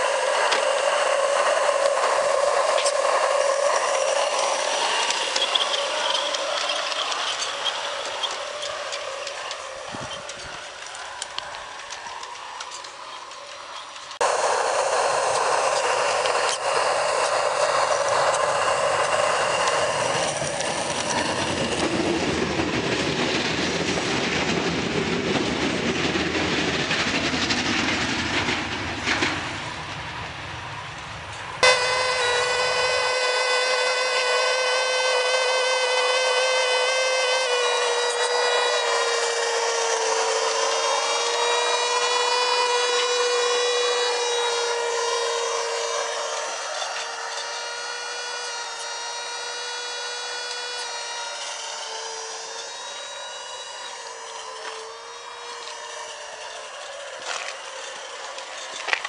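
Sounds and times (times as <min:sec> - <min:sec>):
model steam locomotive whine: 0:00.0 - 0:59.0
wheels clicking over rails: 0:00.0 - 0:59.0.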